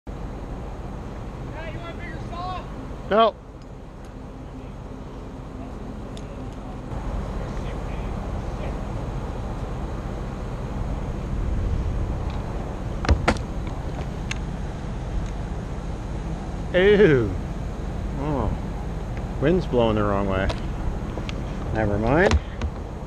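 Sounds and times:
truck engine rumbling: 0.1s - 23.0s
sharp knocks: 13.0s - 13.5s, 22.2s - 22.9s.

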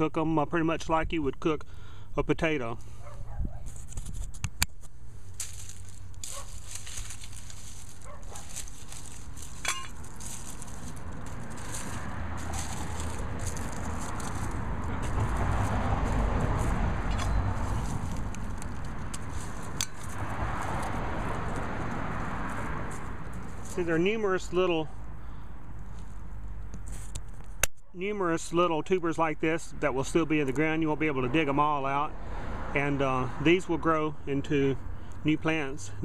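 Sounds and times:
hand rustling dry leaves and soil: 3.6s - 24.9s.

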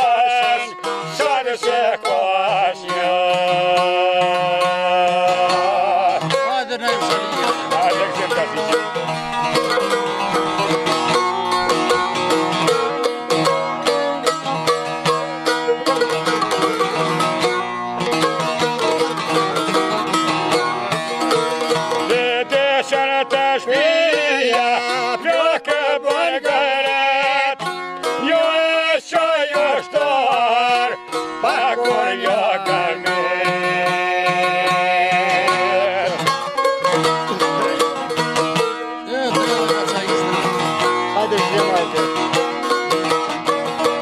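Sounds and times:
man singing: 0.0s - 8.9s, 22.0s - 36.4s
plucked lutes fast melody: 0.0s - 44.0s.

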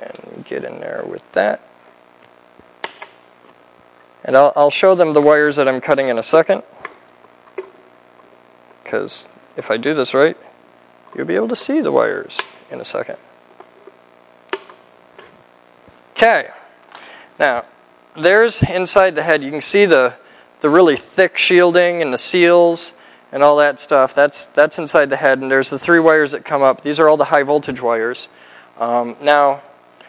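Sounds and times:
faint steady hum: 0.0s - 30.0s
wire cutters snipping wire: 2.8s - 3.2s
wire cutters snipping: 2.8s - 3.6s, 13.6s - 15.4s.

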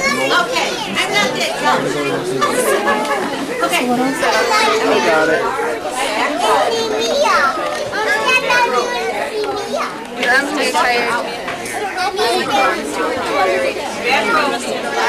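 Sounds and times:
young children chattering: 0.0s - 15.0s.

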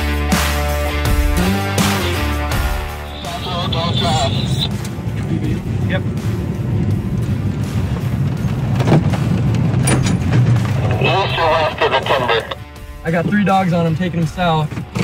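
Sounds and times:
truck engine and tyres rumbling: 1.4s - 15.0s
person speaking: 3.1s - 4.7s, 10.8s - 12.6s.

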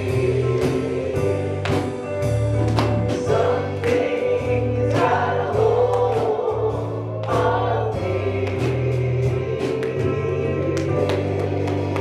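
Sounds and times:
people singing: 0.0s - 2.2s, 2.8s - 12.0s
drum kit with cymbal crashes: 0.0s - 10.5s
keyboard bass notes: 0.0s - 12.0s.

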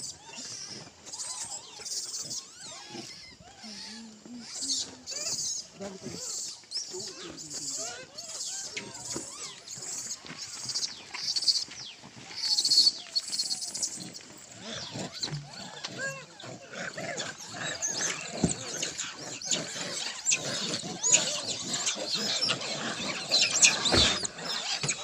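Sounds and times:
monkey calls and squeals: 0.0s - 25.0s.

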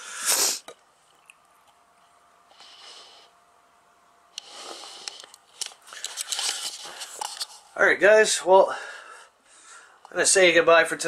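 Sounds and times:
rustling and crinkling: 5.1s - 7.8s
man speaking: 7.8s - 8.8s, 10.1s - 11.0s.

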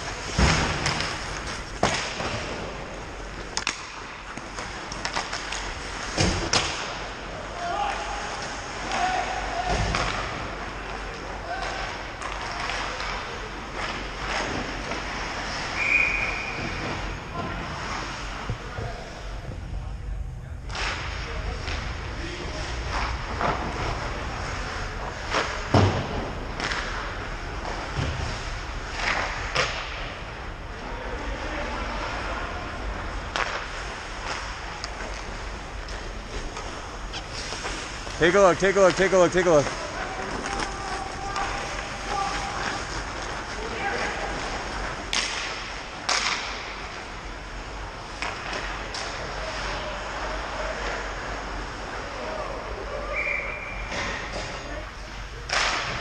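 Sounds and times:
hockey sticks and puck knocking: 0.3s - 7.1s, 33.3s - 47.1s
skates hissing on ice: 37.2s - 38.2s
players shouting: 38.2s - 44.5s.

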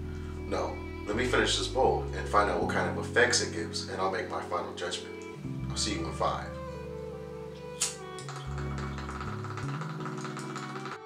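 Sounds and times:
light tapping rhythm: 7.6s - 11.0s
sharp click: 7.8s - 11.0s.

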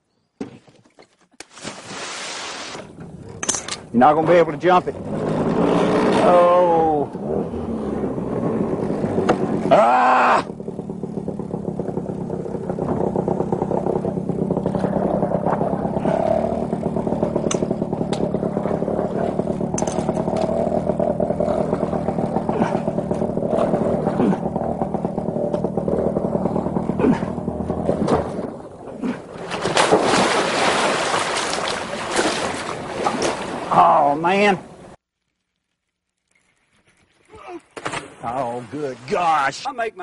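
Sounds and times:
man splashing into river: 1.4s - 2.8s, 29.0s - 33.7s, 37.7s - 39.3s
outboard motor running: 2.8s - 35.0s.

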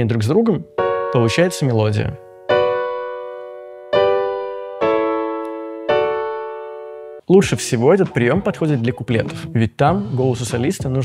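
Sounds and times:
grand piano block chords: 0.4s - 9.6s.

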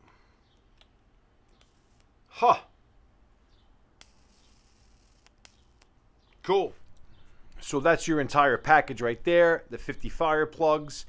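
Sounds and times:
electric arc lighter buzz: 1.5s - 2.3s, 4.0s - 6.0s
sharp click: 4.0s - 7.6s.

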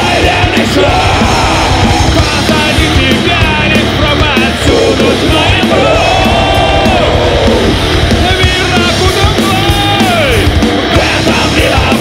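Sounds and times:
harsh yelled lead vocal: 0.0s - 12.0s
heavy metal band playing live: 0.0s - 12.0s.

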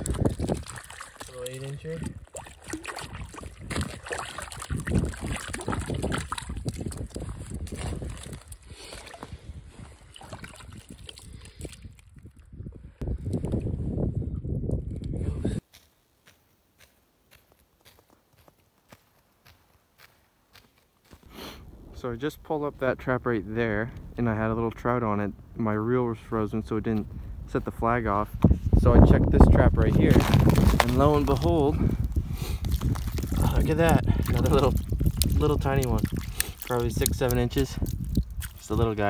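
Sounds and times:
water sloshing and splashing: 0.0s - 12.5s, 29.9s - 31.7s, 32.6s - 39.0s.

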